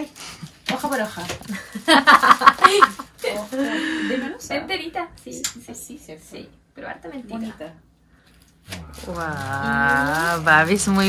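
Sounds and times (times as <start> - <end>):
women laughing: 1.5 - 3.9
women talking: 9.1 - 11.0.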